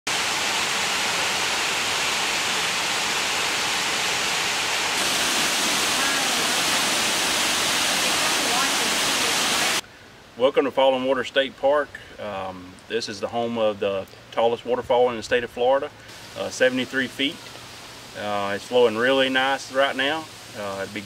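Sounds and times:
waterfall rushing: 0.1 - 9.8, 16.0 - 21.0.

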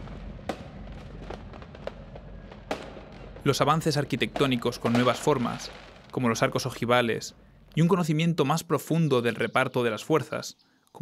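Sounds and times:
fireworks bangs: 0.0 - 7.8
steady low rumble: 0.0 - 8.0.

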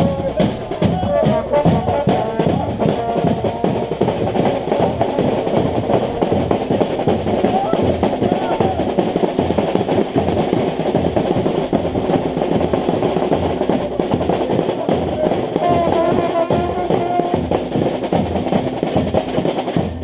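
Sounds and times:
trumpet holding notes: 0.0 - 9.3, 15.2 - 17.6
bass drum beat: 0.0 - 20.0
snare drum rolls: 0.0 - 20.0.

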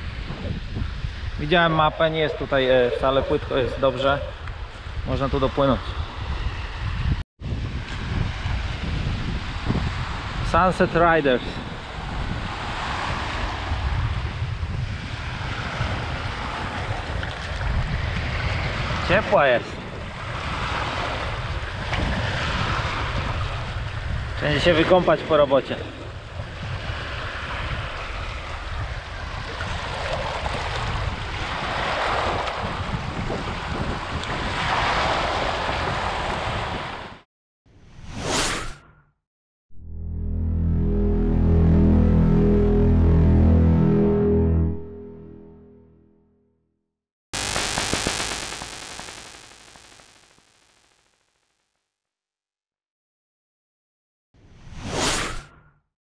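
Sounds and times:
low synth tone: 39.7 - 46.4, 47.4 - 51.0
electronic whoosh effects: 47.4 - 51.0.

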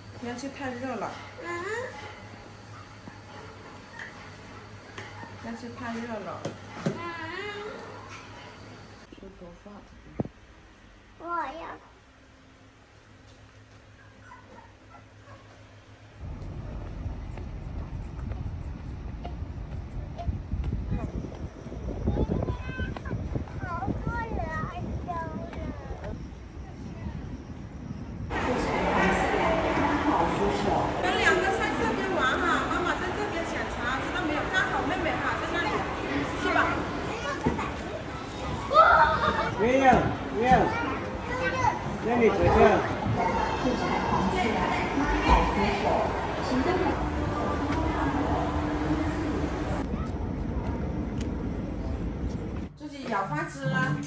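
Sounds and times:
faint low hum: 11.9 - 37.3
wind buffeting microphone: 16.2 - 40.3
children's voices: 22.0 - 26.2, 34.3 - 39.6, 40.5 - 42.0, 42.6 - 45.4
background chatter: 28.3 - 52.2.

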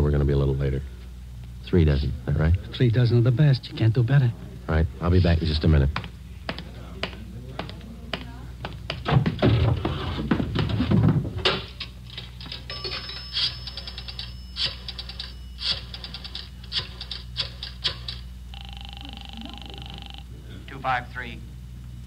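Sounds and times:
steady low hum: 0.0 - 22.0
telephone ring through receiver: 12.5 - 20.3.

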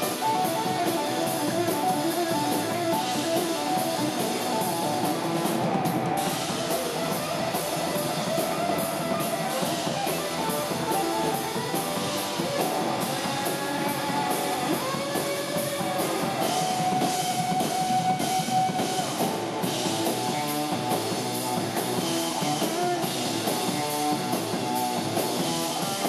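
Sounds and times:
amplified electric guitar: 0.0 - 26.0
drums: 0.0 - 26.0.

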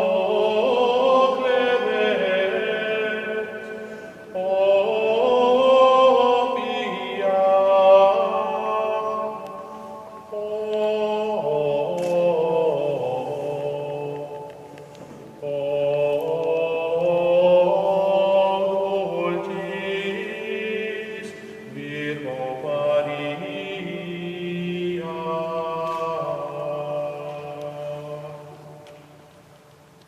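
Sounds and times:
slow vocal chant: 0.0 - 30.0.

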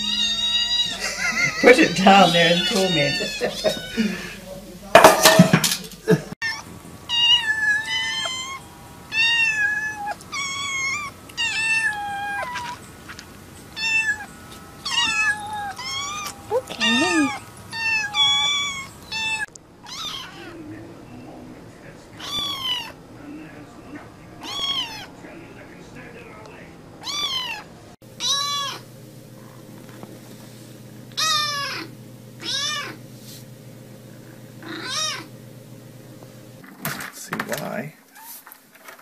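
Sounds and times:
cat meowing: 0.0 - 4.3, 6.4 - 12.8, 13.7 - 20.7, 22.2 - 23.0, 24.4 - 25.2, 27.0 - 28.9, 31.2 - 33.0, 34.6 - 35.3.

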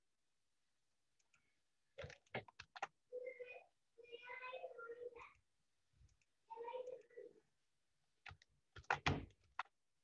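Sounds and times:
mouse and keyboard clicks: 2.0 - 3.0.

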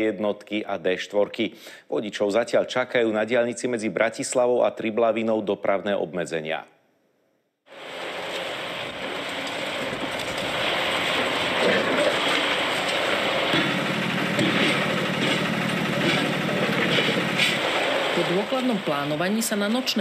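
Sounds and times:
diesel engines under load: 7.7 - 20.0
steady engine drone: 7.7 - 20.0
concrete breaking and clattering: 8.2 - 18.1
sharp knocks: 12.9 - 17.6.

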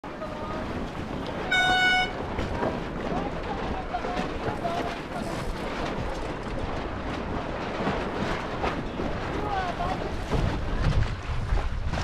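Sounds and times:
water noise: 0.0 - 12.0
wind: 0.0 - 12.0
signal horn blast: 1.5 - 2.2.

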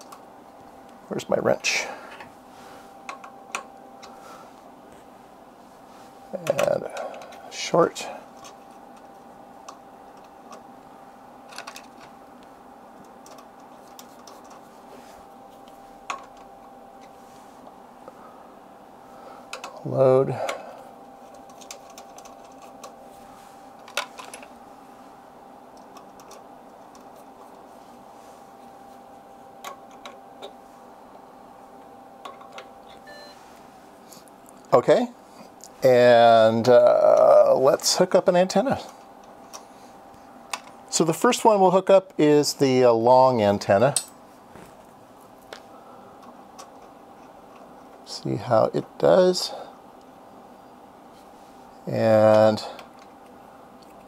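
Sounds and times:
steady electrical hum: 0.0 - 54.0
handling noise: 44.0 - 45.7.

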